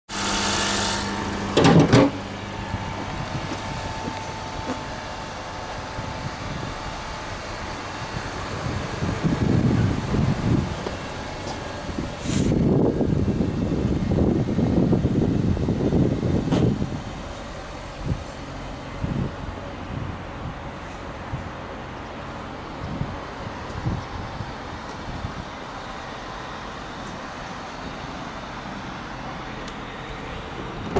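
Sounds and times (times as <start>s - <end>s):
low traffic rumble: 0.1s - 30.9s.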